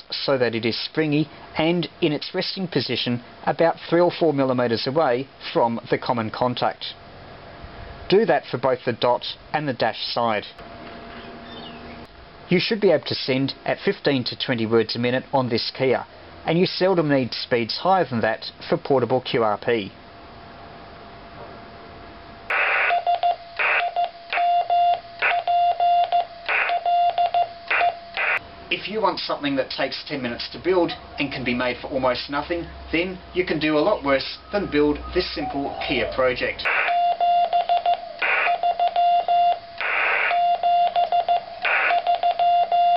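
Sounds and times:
radio hiss bursts: 22.5s - 24.5s, 26.4s - 26.8s, 27.5s - 28.4s, 35.2s - 37.0s, 38.2s - 38.6s, 39.8s - 40.4s, 41.4s - 42.0s
morse code beeping: 22.5s - 28.4s, 34.4s - 42.9s.

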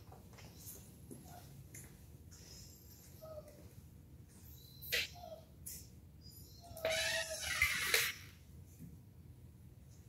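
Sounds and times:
dog whining: 2.5s - 3.7s, 4.5s - 5.6s, 6.2s - 8.4s.

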